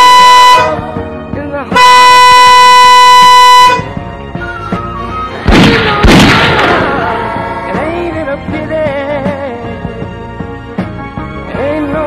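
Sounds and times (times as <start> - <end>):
electronic bleep tone: 0.0 - 0.8, 1.8 - 3.8.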